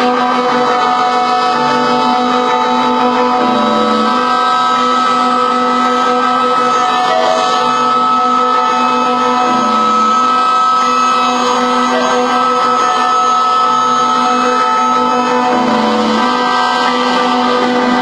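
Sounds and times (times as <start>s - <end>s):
electronic noise drone: 0.0s - 18.0s.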